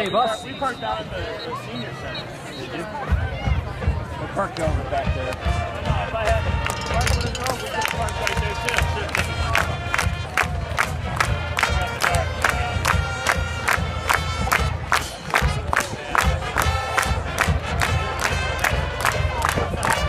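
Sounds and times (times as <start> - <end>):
crowd noise: 0.0 - 20.0
steady drum beat: 3.0 - 19.8
brass notes: 5.0 - 20.0.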